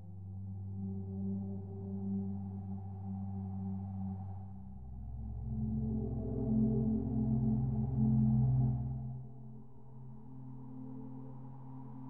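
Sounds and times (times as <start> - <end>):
ambient electronic drone music: 0.0 - 12.0.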